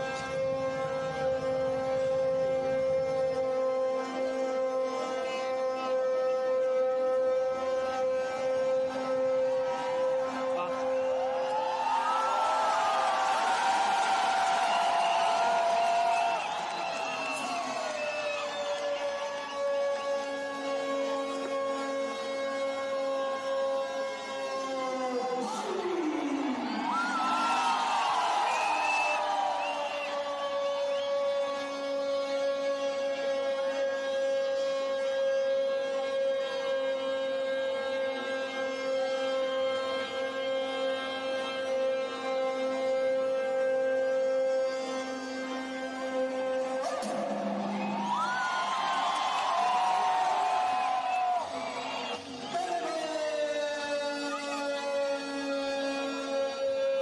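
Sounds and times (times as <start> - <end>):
stadium crowd cheering: 9.0 - 21.5, 25.0 - 32.2, 45.8 - 57.0.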